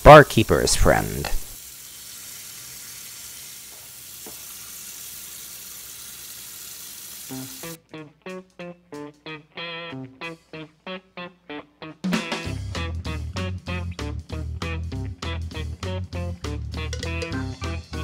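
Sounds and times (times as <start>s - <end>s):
tap water running into sink: 0.3s - 7.8s
plucked guitar music: 7.3s - 18.0s.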